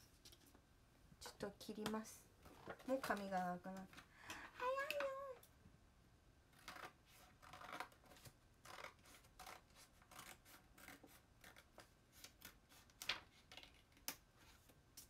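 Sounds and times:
scissors snipping paper: 6.6s - 14.2s.

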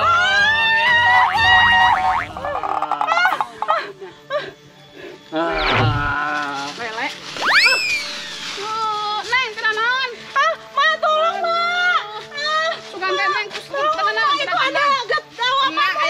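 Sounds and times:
background music: 0.0s - 16.0s
rising and falling whistle: 7.4s - 8.5s.

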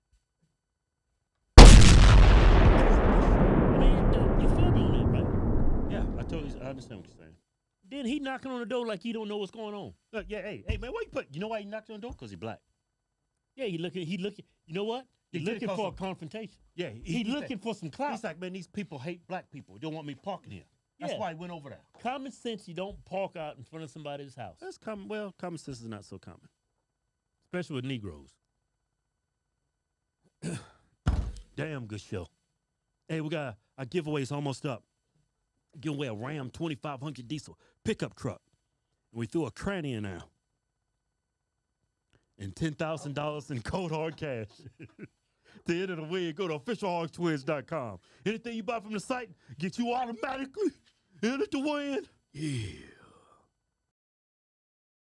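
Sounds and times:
explosion boom with rumbling tail: 1.6s - 7.1s.

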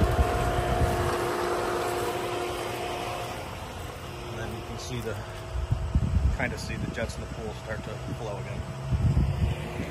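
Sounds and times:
pool pump motor humming: 0.0s - 9.9s.

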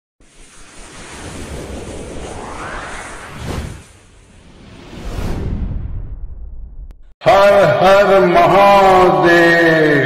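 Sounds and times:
whoosh sound effect: 0.2s - 6.9s.

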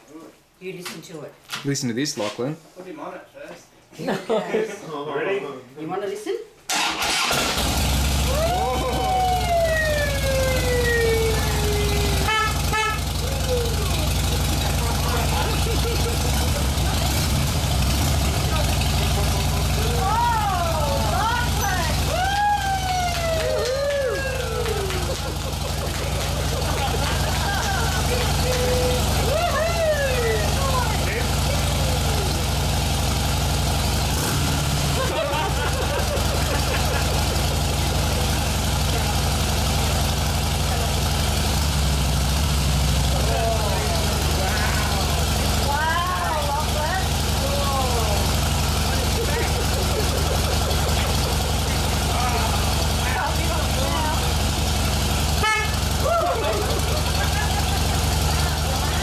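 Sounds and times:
motorcycle engine idling: 7.0s - 59.0s
voices calling out: 7.1s - 34.1s, 34.7s - 59.0s.

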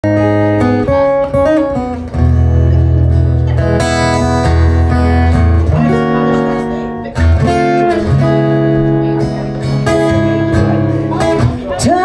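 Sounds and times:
acoustic guitar strummed chords: 0.0s - 12.0s.

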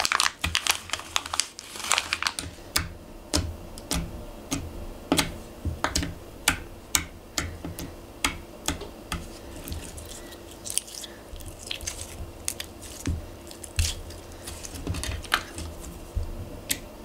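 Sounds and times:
slime squelching and popping: 9.1s - 15.9s.

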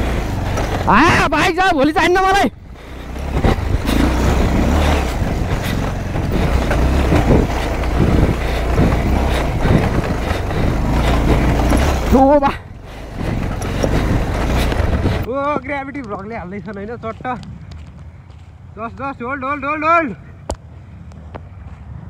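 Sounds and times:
knocks and rattles from bumps: 0.0s - 15.3s
motorcycle engine running: 0.0s - 15.3s
voices: 0.0s - 17.4s.

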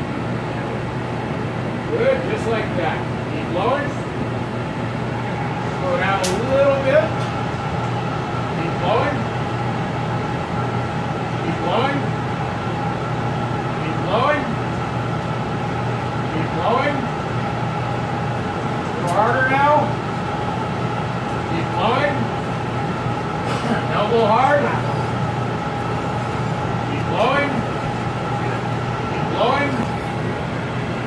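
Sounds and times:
steady hum with held tones: 0.0s - 31.0s.

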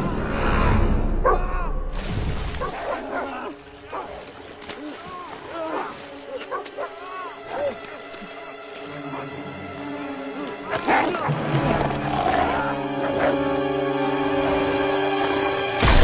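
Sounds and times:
water splashing: 1.9s - 11.7s.

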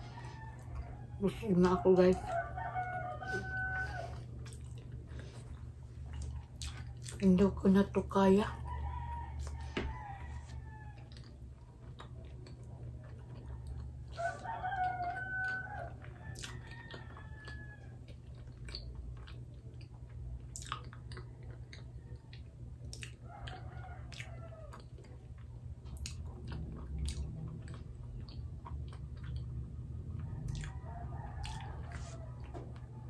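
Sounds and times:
rooster crowing: 0.0s - 4.3s, 8.6s - 11.3s, 14.1s - 18.1s, 23.2s - 24.8s, 30.2s - 33.0s
person chewing: 2.2s - 7.4s, 9.1s - 29.8s, 30.4s - 32.9s.

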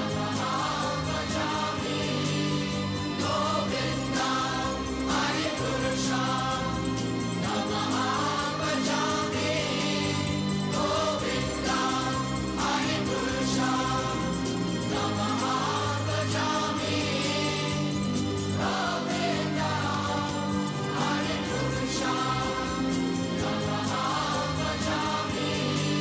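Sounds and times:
choir singing slowly: 0.0s - 26.0s
sustained low drones: 0.0s - 26.0s.

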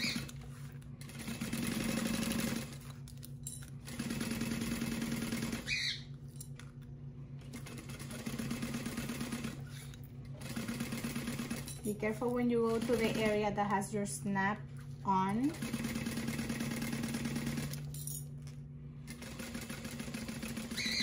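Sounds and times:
sewing machine stitching: 1.0s - 3.0s, 3.9s - 5.7s, 7.5s - 11.9s, 15.5s - 17.9s, 19.1s - 21.0s.

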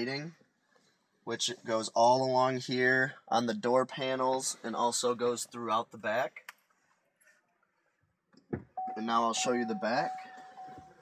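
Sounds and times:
car electronic chime tone: 8.8s - 11.0s.

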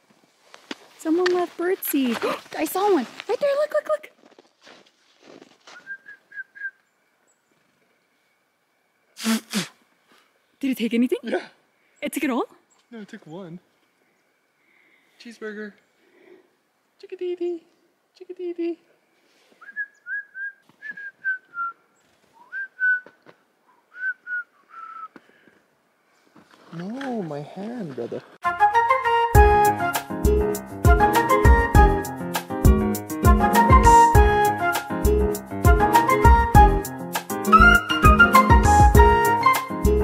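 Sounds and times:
short whistled notes: 5.8s - 6.8s, 19.6s - 21.8s, 22.4s - 23.2s, 23.9s - 25.2s, 37.4s - 40.0s.

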